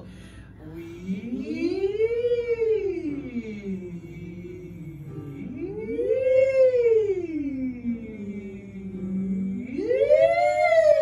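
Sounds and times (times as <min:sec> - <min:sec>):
women singing vocal slides: 0:00.0 - 0:11.0.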